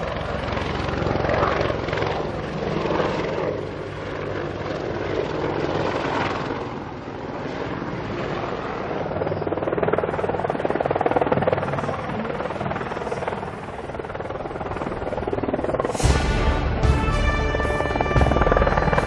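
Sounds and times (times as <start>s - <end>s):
helicopter flying past: 0.0s - 19.0s.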